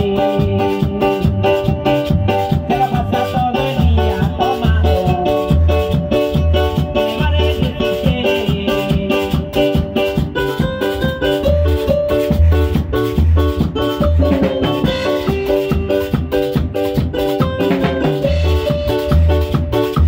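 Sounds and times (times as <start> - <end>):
bass guitar: 0.0 - 20.0
drum kit dance beat: 0.0 - 20.0
electric keyboard: 0.0 - 20.0.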